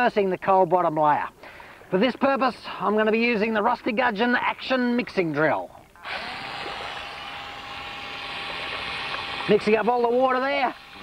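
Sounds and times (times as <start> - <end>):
cordless drill motor running: 6.0 - 11.0
water churning and splashing: 6.0 - 11.0.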